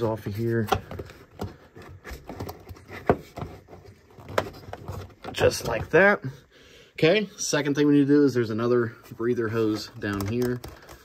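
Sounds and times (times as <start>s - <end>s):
rubber hose clicks and knocks: 0.6s - 6.0s, 9.6s - 11.0s.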